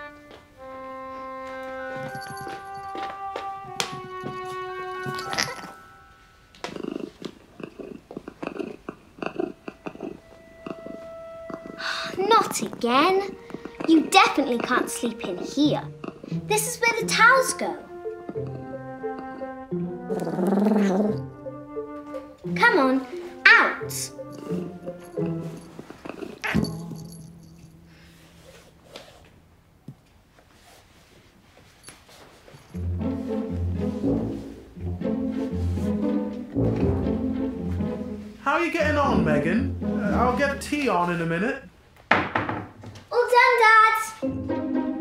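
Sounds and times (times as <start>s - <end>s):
light background music: 0.0s - 6.9s, 8.5s - 29.6s, 32.4s - 41.6s, 44.0s - 45.0s
rough rattling purr: 6.6s - 16.4s, 20.0s - 21.3s, 24.2s - 27.7s.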